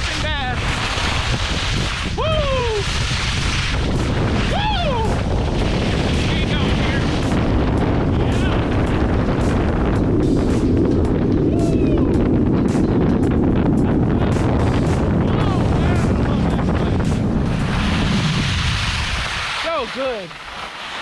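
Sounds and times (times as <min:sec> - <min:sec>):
skis carving on wet snow: 0:00.0 - 0:09.8, 0:15.3 - 0:21.0
wind buffeting microphone: 0:00.0 - 0:21.0.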